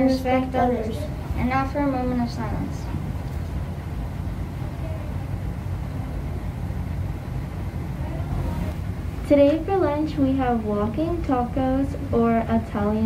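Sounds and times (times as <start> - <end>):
faint voices: 0.0 - 9.7
low rumble of room noise: 0.0 - 13.0.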